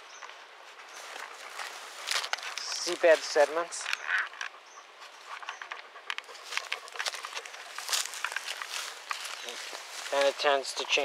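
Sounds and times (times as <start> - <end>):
dry grass and twigs crackling: 0.0 - 11.0.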